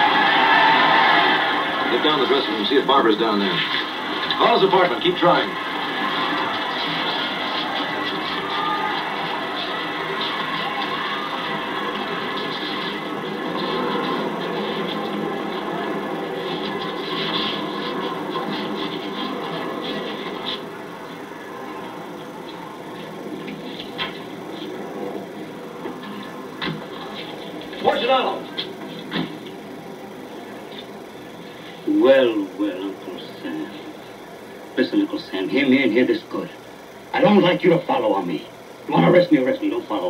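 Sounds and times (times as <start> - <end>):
crowd din through small speaker: 0.0 - 40.0
film projector clattering: 0.2 - 40.0.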